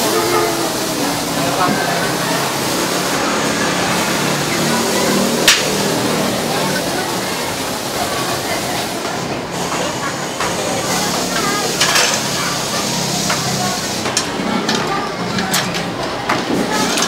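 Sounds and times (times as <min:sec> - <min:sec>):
indistinct voices: 0:00.0 - 0:17.0
steady background noise: 0:00.0 - 0:17.0.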